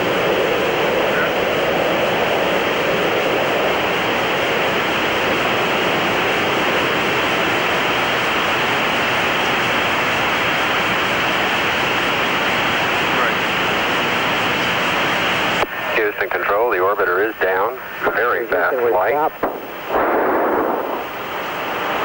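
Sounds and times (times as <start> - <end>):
faint hum: 0.0 - 22.0
radio channel hiss: 0.8 - 1.6, 12.4 - 22.0.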